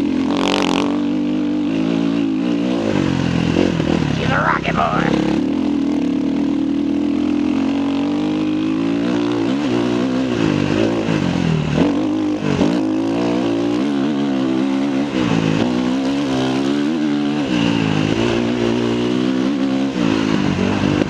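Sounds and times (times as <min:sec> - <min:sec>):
motorcycle engine revving: 0:05.1 - 0:21.0.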